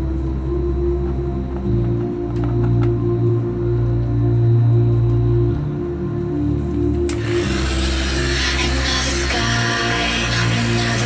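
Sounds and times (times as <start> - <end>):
loud electronic music: 0.0 - 11.0
rotary polisher whirring: 7.1 - 11.0.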